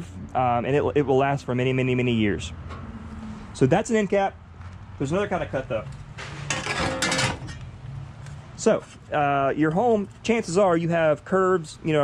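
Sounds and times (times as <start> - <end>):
sheet metal clattering: 6.2 - 7.6.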